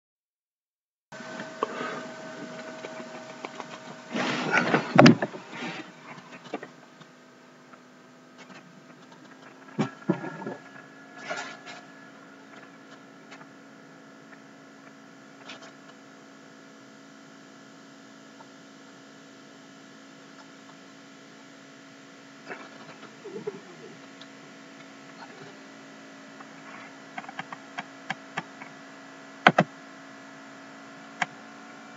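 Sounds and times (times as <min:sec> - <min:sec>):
background hum and hiss: 0:01.1 - 0:31.9
faint whining tones: 0:01.1 - 0:31.9.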